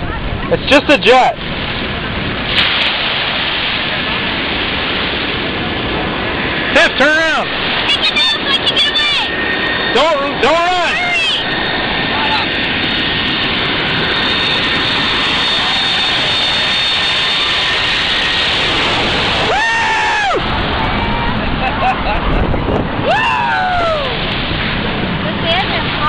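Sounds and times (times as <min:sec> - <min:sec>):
jet airliner engines roaring: 0:00.0 - 0:26.0
person crying out: 0:19.5 - 0:20.4, 0:23.0 - 0:24.2.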